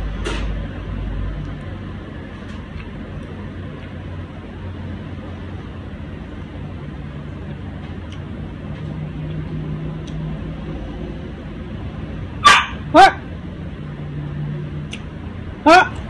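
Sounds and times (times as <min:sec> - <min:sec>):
dog barking: 0:12.4 - 0:13.3, 0:15.7 - 0:16.0.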